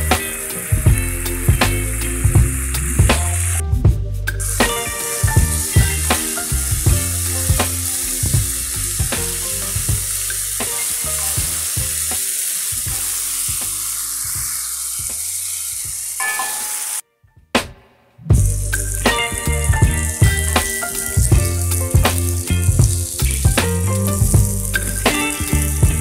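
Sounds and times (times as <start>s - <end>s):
background music with a beat: 0.0s - 15.2s, 17.4s - 26.0s
meat sizzling in a wok: 4.4s - 17.0s, 18.4s - 26.0s.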